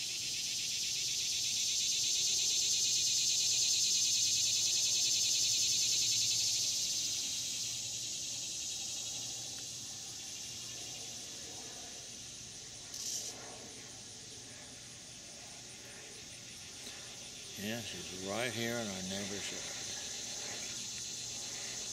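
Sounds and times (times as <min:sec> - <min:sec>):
insect chorus buzzing: 0:00.0 - 0:21.9.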